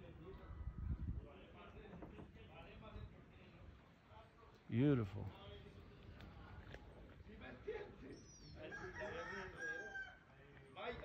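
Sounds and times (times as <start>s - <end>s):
rooster crowing: 8.7s - 10.2s.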